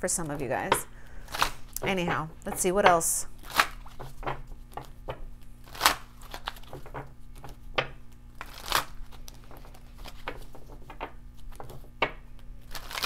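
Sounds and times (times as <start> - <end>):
cards being shuffled: 8.4 - 12.0, 12.6 - 13.0.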